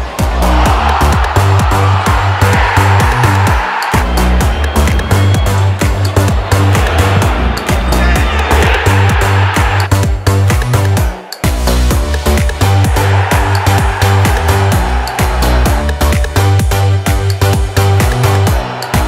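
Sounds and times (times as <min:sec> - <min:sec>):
electronic dance music: 0:00.0 - 0:19.0.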